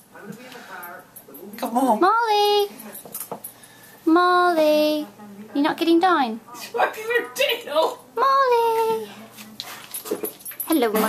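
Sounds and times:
woman speaking: 0.2s - 3.2s, 4.1s - 9.6s, 10.6s - 11.0s.

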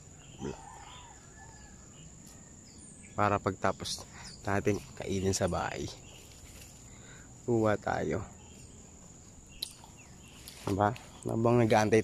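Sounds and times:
crickets droning: 0.0s - 12.0s
short pitched insect call: 0.0s - 12.0s.

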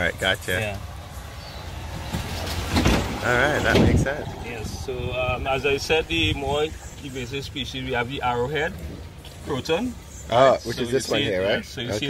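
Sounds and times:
passing cart rush: 0.0s - 10.4s
golf cart driving hum: 0.0s - 11.9s.

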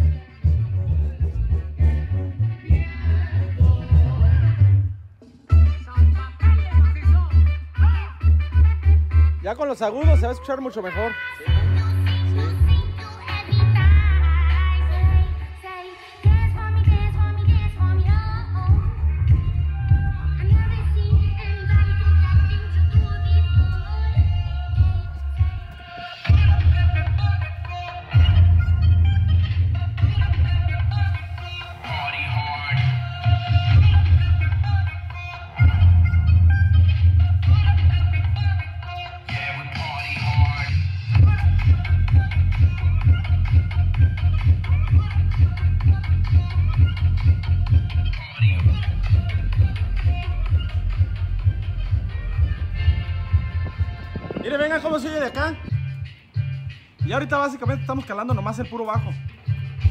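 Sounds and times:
bass-heavy music on loudspeakers: 0.0s - 59.9s.

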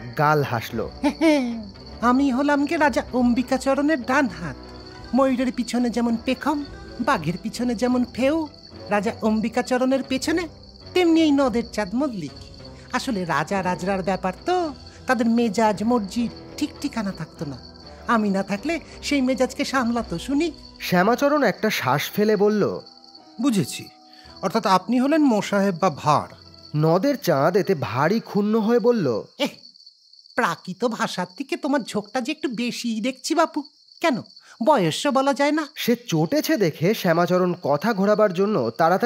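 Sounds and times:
crickets chirping: 0.0s - 39.0s.

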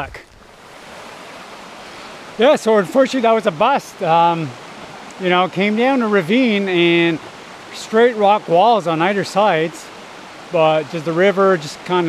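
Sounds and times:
brook running water: 0.0s - 12.0s.

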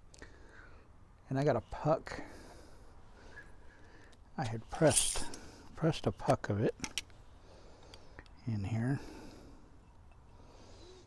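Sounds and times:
man breathing on tobacco pipe: 7.3s - 8.4s, 9.0s - 11.0s.

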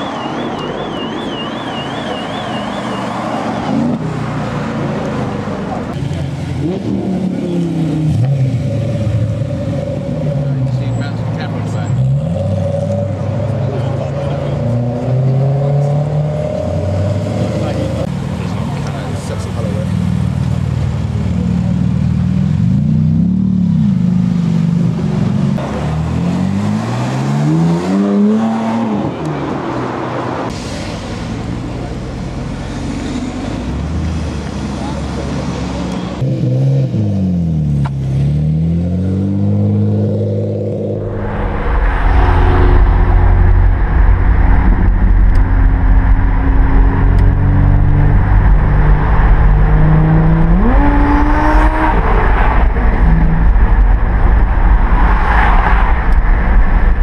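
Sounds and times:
car engines revving: 0.0s - 57.0s.

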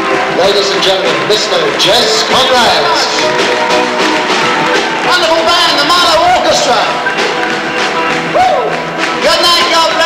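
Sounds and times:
live band playing chords: 0.0s - 10.0s.

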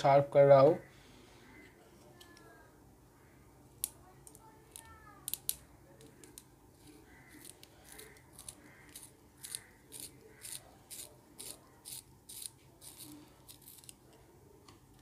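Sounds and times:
pencil sharpener scraping wood: 6.8s - 14.0s.

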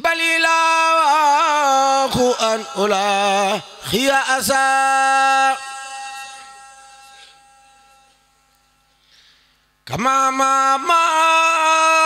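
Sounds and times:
man chanting into a microphone: 0.0s - 6.7s, 9.8s - 12.0s.

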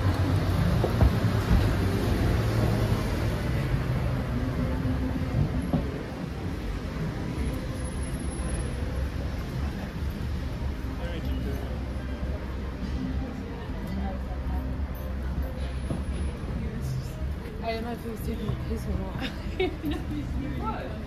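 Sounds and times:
low rumble of road traffic: 0.0s - 21.0s.

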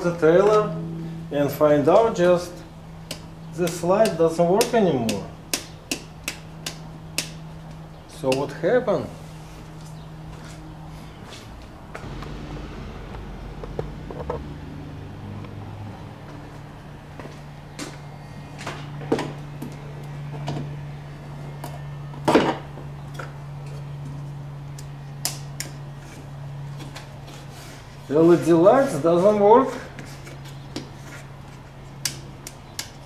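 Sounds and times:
steady low hum: 0.0s - 3.7s, 9.1s - 26.8s.

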